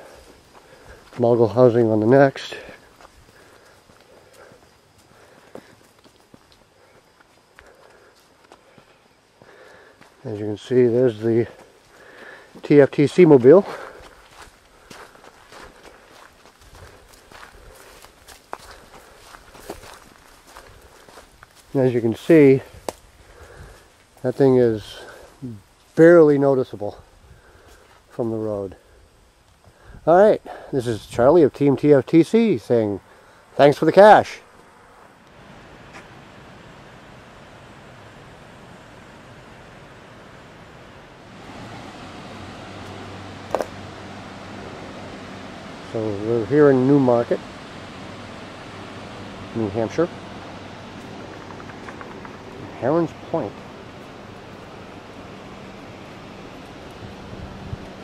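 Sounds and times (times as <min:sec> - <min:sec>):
footsteps on dirt trail: 0:00.0 - 0:24.2, 0:34.5 - 0:36.3, 0:41.3 - 0:46.0.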